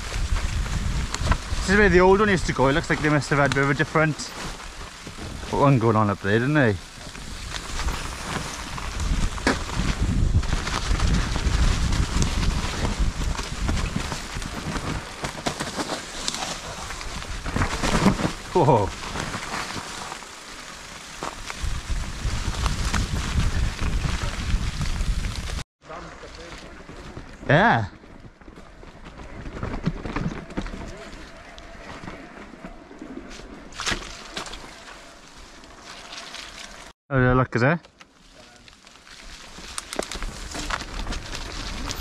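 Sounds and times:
wind rumble on microphone: 0.0 - 3.7, 6.9 - 15.2, 21.2 - 25.6
bike rattling: 0.0 - 36.9, 38.1 - 42.0
bike tyres rolling on dirt: 0.0 - 37.0, 37.6 - 42.0.

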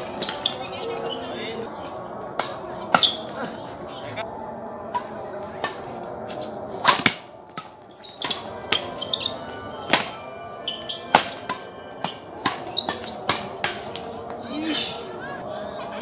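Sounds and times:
rackets smacking shuttlecock: 0.0 - 0.8, 2.3 - 3.4, 4.9 - 14.4
crickets chirring: 0.0 - 16.0.

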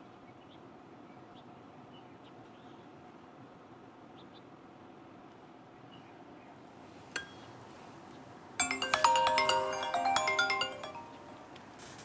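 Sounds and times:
mobile phone ringtone chiming: 8.6 - 11.5.

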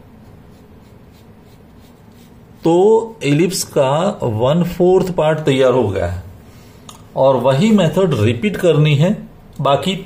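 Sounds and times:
marker scratching on paper: 0.0 - 2.9.

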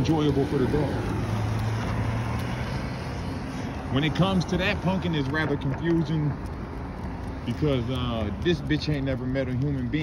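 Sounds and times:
road noise: 0.0 - 10.0.

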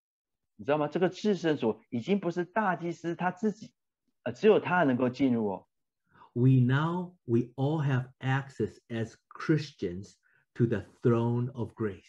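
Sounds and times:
man speaking: 0.6 - 3.7, 4.3 - 5.7, 6.3 - 12.0.

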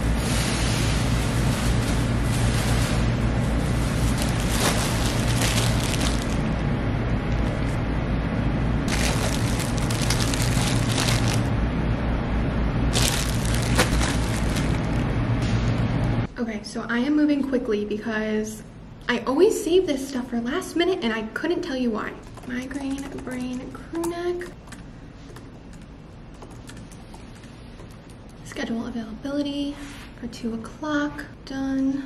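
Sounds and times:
steady low hum: 0.0 - 17.0
plastic bags crinkling: 3.6 - 6.5, 8.9 - 11.5, 12.9 - 15.1.

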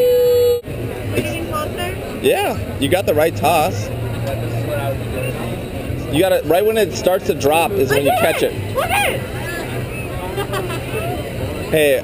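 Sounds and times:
faint distant voices: 0.7 - 12.0.

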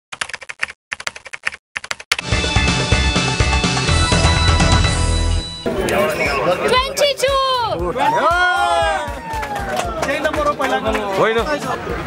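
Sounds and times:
computer keyboard typing: 0.1 - 2.2.

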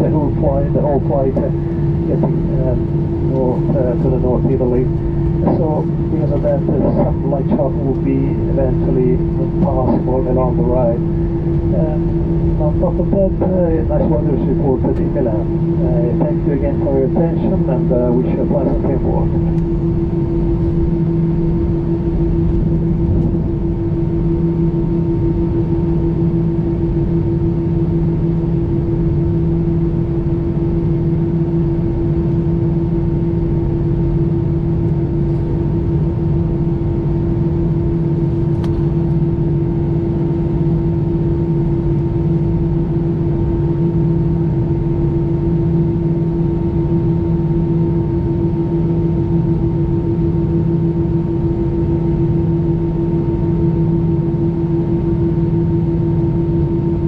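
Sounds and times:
airplane cabin drone: 0.0 - 57.0
low two-tone hum: 0.0 - 57.0.

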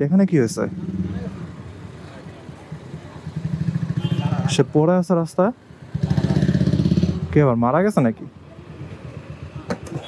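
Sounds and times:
motorcycle engine running: 2.6 - 4.6.

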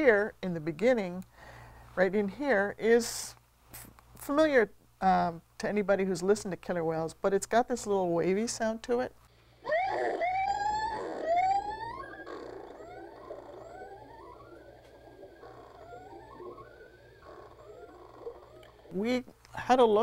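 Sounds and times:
killer whale call: 9.7 - 18.9.

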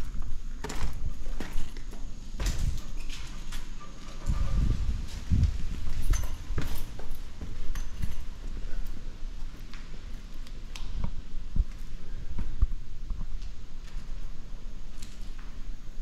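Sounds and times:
footsteps on concrete: 0.0 - 15.6.

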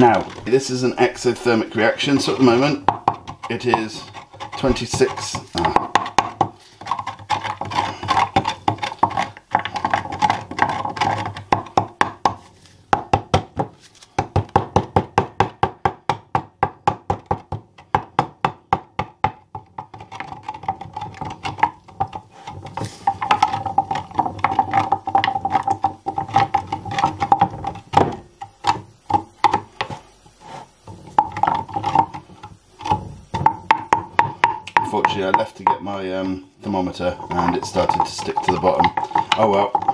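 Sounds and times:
wooden spoon clacking in glass jug: 0.0 - 12.4, 19.1 - 29.6, 37.0 - 39.9.

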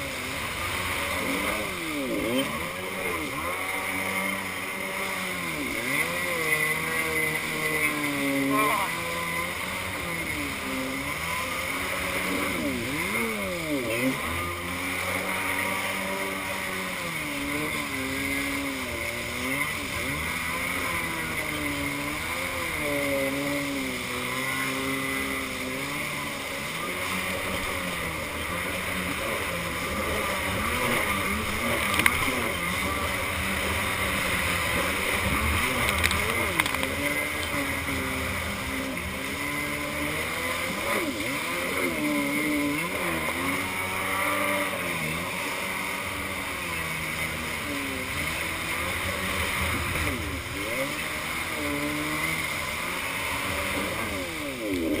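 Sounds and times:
jet ski engine revving: 0.0 - 55.0.

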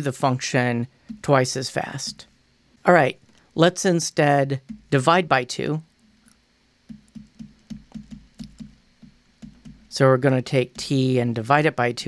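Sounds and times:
stylus knocking on pen tablet: 1.1 - 1.3, 4.6 - 5.0, 6.9 - 9.9.

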